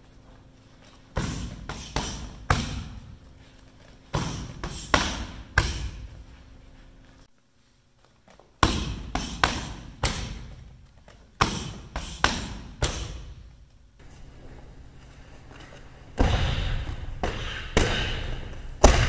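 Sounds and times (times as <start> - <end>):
strikes smacking on pads: 4.1 - 6.0, 11.4 - 13.3.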